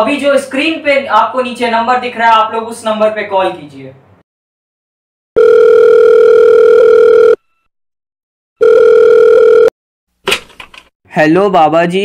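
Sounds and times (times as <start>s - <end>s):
telephone ringing tone beeps: 5.4s - 7.7s, 8.6s - 9.7s.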